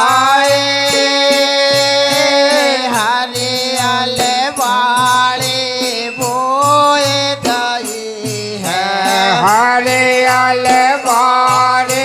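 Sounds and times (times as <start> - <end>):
dholak drum beat: 0.0 - 12.0
men singing devotional song: 0.0 - 12.0.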